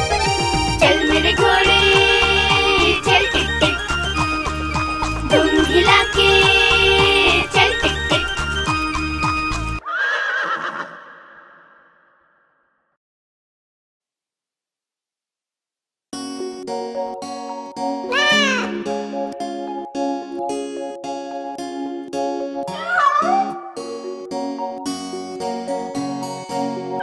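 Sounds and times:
instrumental children's tune: 0.0 - 9.8, 16.2 - 27.0
horse whinnying: 9.8 - 12.4
cat meowing: 18.1 - 18.8, 22.7 - 23.7.

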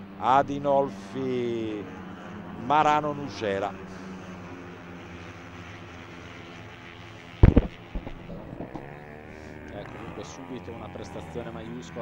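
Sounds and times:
scooter engines racing: 0.0 - 12.0
loud sudden thump: 7.4 - 8.8.

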